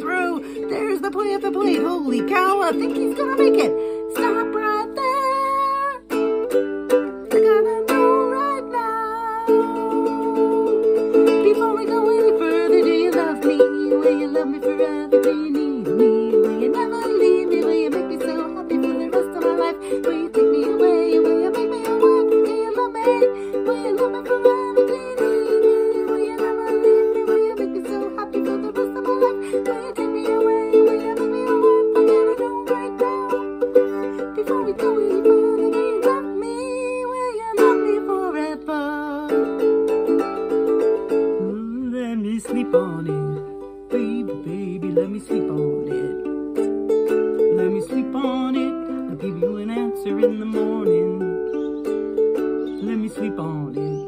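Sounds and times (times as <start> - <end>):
person singing: 0.0 - 54.0
ukulele strumming chords: 0.0 - 54.0.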